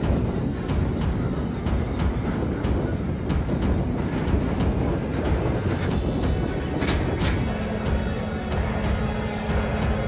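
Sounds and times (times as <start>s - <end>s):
heavy truck driving on gravel: 0.0s - 10.0s.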